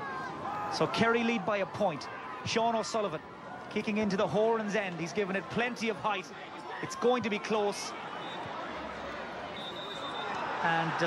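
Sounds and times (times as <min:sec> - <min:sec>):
stadium crowd hubbub: 0:00.0 - 0:11.0.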